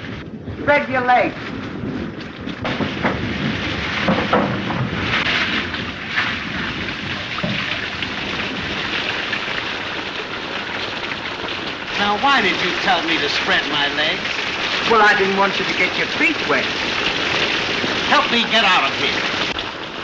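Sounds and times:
heavy rain: 0.0 - 20.0
water splashing down wall: 2.2 - 20.0.

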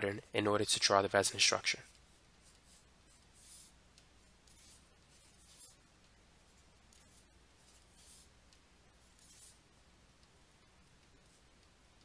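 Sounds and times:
low room hum: 0.0 - 12.0
stylus scratching on tablet: 1.3 - 12.0.

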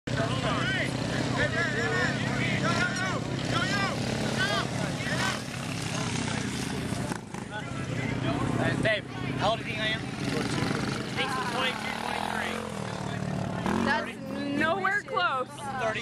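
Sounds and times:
mini bike engine running: 0.1 - 14.4
people shouting and talking: 0.1 - 16.0.

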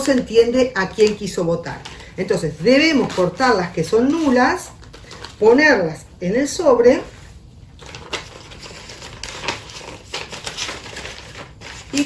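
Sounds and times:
paper rustling and tearing: 2.8 - 5.4, 7.8 - 12.0.

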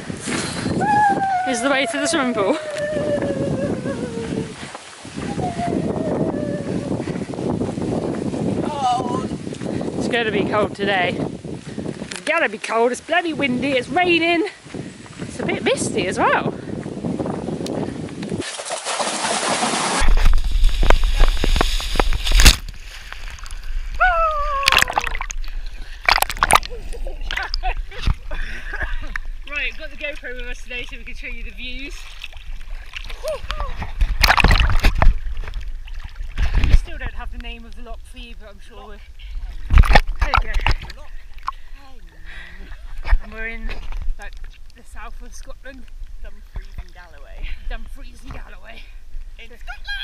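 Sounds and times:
wind on microphone: 0.0 - 18.6, 19.2 - 50.0
wavering voice hum: 0.8 - 4.6, 5.2 - 7.2
waterproof robe rustling: 1.6 - 15.8, 18.3 - 41.7
quick footsteps on wet dirt: 14.5 - 15.5
swimmers splashing: 18.4 - 36.4
swimmer falling cry: 24.0 - 25.3.

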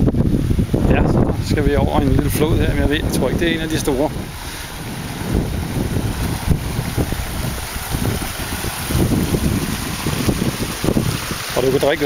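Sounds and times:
stream rushing over rock: 0.0 - 12.0
wind buffeting microphone: 0.0 - 12.0.

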